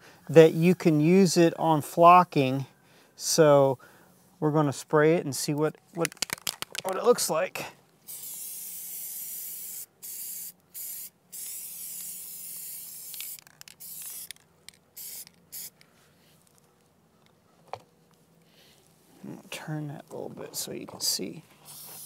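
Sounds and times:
aerosol can spraying: 8.1 - 14.4, 15.0 - 15.8, 21.6 - 22.0.

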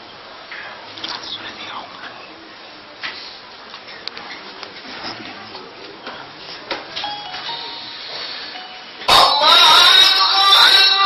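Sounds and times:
room noise: 0.0 - 11.0
amplified male chanting voice: 9.1 - 11.0.

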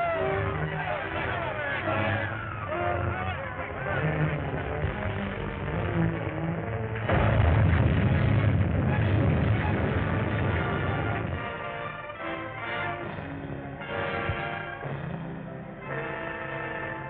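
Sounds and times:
dramatic orchestral chase music: 0.0 - 17.0.

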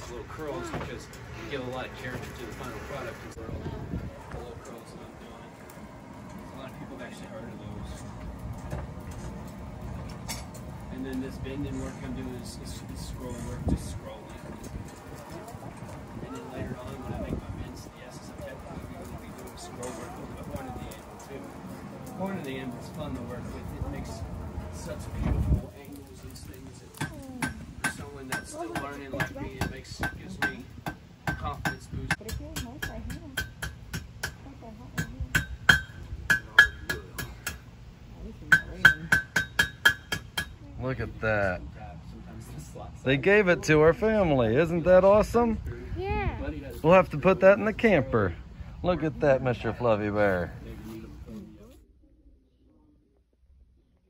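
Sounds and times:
faint voices talking: 0.0 - 39.3
hammer striking iron on anvil: 27.0 - 34.4, 35.0 - 37.6, 38.5 - 40.6.

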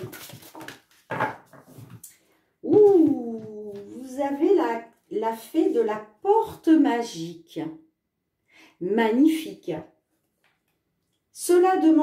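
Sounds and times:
cards rustling and tapping: 0.0 - 2.0.

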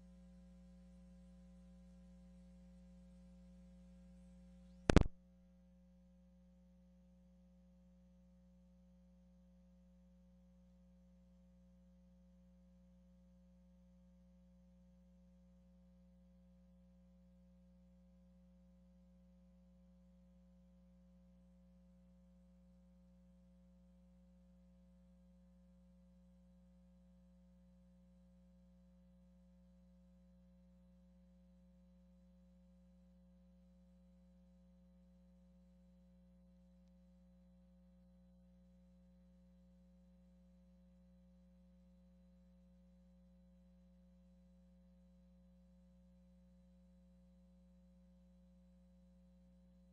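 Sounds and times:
single click: 4.8 - 5.2.

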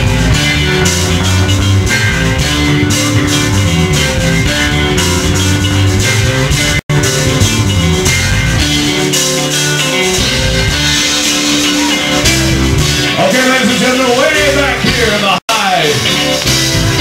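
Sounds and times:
electric bass line: 0.0 - 17.0
live rock band playing: 0.0 - 17.0.

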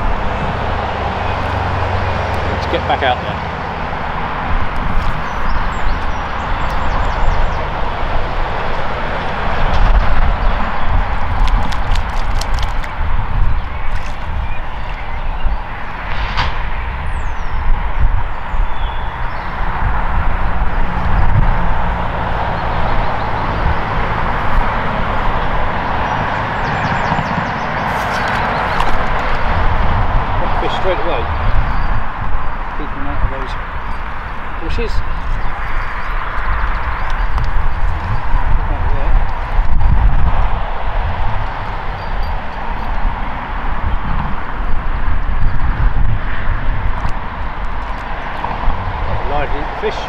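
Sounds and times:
low traffic rumble: 0.0 - 50.0.

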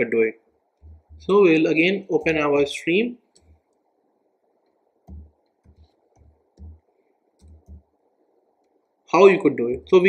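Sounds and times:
faint steady hiss: 0.0 - 10.0.

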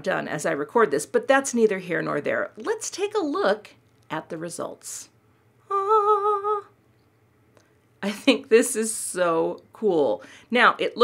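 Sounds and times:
woman humming: 5.6 - 6.7.

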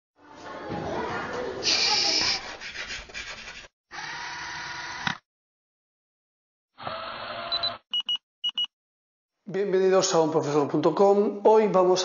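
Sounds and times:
chalk scratching on blackboard: 1.6 - 3.7.

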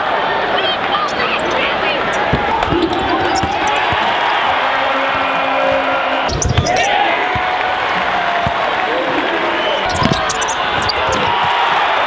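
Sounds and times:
arena crowd voices: 0.0 - 12.0
basketball bouncing on hardwood: 2.1 - 4.6, 6.3 - 9.2, 9.9 - 12.0.

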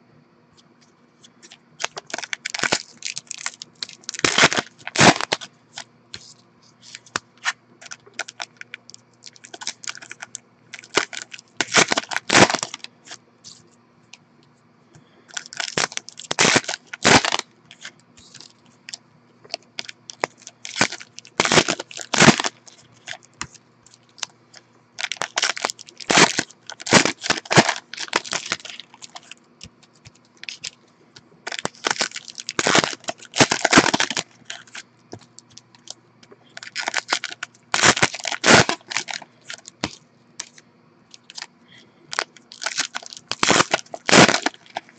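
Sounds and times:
card pack wrappers tearing: 1.8 - 5.5, 6.2 - 12.9, 15.3 - 18.6, 19.5 - 24.3, 25.0 - 29.4, 30.4 - 30.8, 31.4 - 40.6, 41.2 - 41.5, 42.1 - 44.9.

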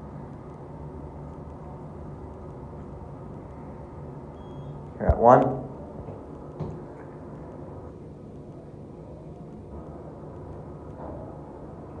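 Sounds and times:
faint knock: 6.6 - 6.8.

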